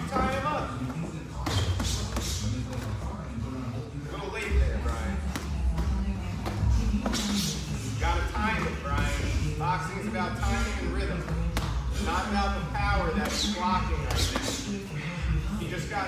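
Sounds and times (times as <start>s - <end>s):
background music: 0.0s - 16.0s.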